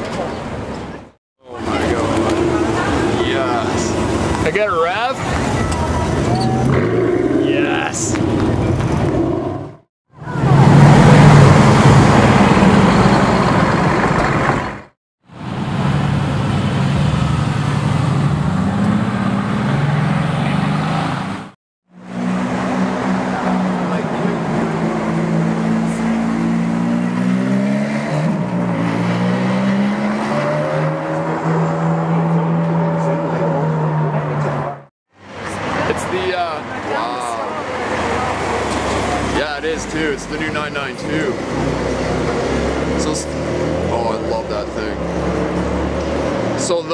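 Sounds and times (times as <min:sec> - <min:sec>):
engine revving through gears: 0:06.1 - 0:14.8, 0:15.7 - 0:34.9, 0:37.9 - 0:46.9
car pulling away: 0:10.2 - 0:21.4.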